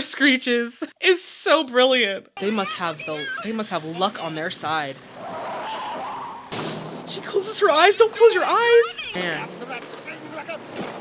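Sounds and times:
car running downhill: 3.7s - 11.0s
car crashing into sand: 5.0s - 7.1s.

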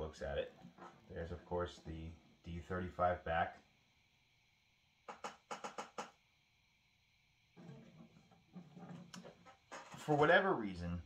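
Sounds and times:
acoustic guitar being handled: 7.6s - 10.4s.

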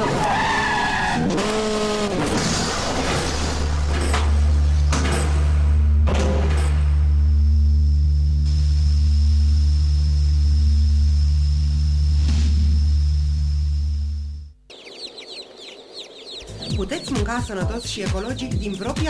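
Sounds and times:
loud steady low drone: 4.7s - 14.6s
chicks peeping: 14.7s - 19.0s.

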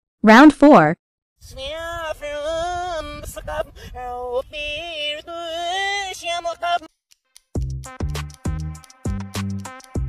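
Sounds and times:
person singing gliding notes: 1.4s - 6.9s
electronic beat with heavy bass: 7.6s - 10.0s.

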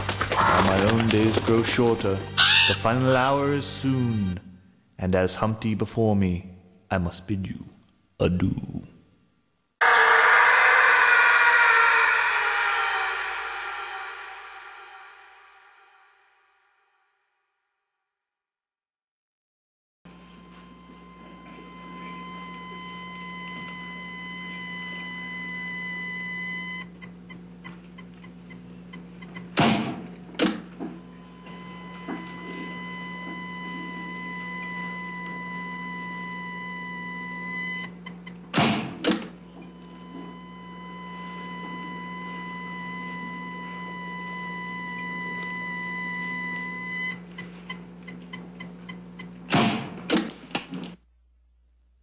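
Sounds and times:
low hum: 9.8s - 16.8s.

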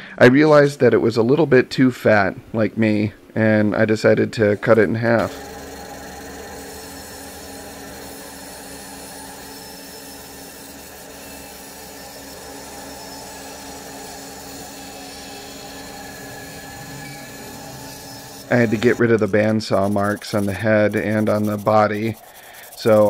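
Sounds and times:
bandsaw cutting wood: 4.6s - 23.0s.

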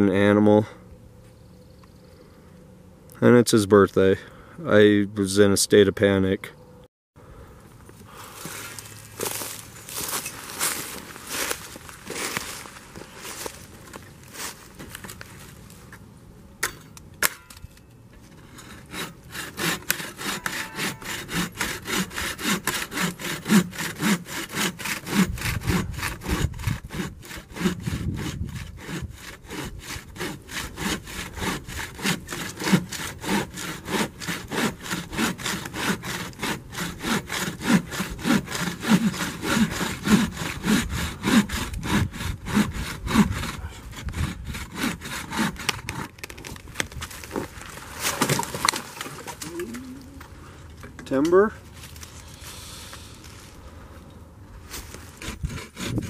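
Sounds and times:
bow saw cutting wood: 18.2s - 46.6s, 54.7s - 56.0s
tree trunk cracking and falling: 46.1s - 49.5s.

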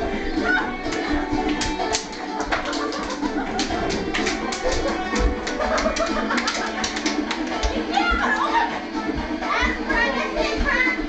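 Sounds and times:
music with steady beat: 0.0s - 11.0s
people laughing: 2.5s - 8.9s
people shouting excitedly: 7.9s - 8.5s.

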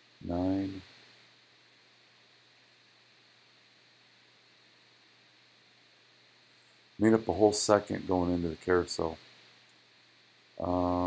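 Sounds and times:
faint recording hiss: 0.0s - 11.0s.

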